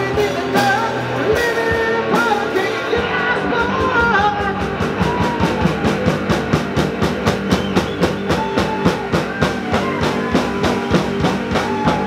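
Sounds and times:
amplified electric guitars: 0.0s - 12.0s
drum kit beating: 0.0s - 12.0s.

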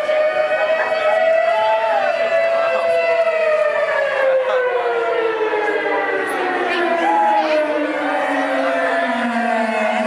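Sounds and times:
loud siren-like tone: 0.0s - 10.0s
faint crowd chatter: 5.4s - 10.0s.

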